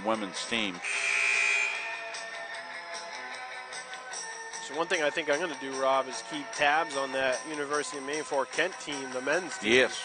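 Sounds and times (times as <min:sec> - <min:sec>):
music: 0:00.0 - 0:10.0
scoreboard buzzer blast: 0:00.8 - 0:02.3.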